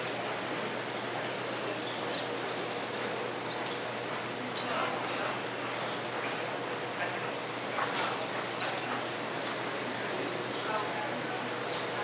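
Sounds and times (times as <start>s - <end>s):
indoor arena background noise: 0.0s - 12.0s.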